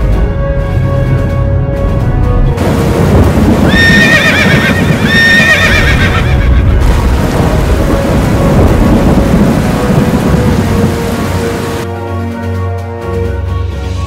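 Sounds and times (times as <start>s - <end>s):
horse whinnying: 3.7s - 6.6s.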